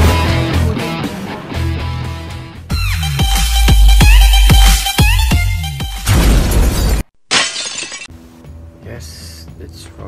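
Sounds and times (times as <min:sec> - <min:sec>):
glass shattering crash: 0:06.1 - 0:08.1.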